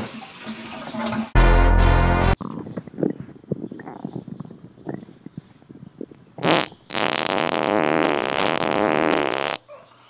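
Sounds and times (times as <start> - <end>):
fluttering farts: 6.4 - 9.6.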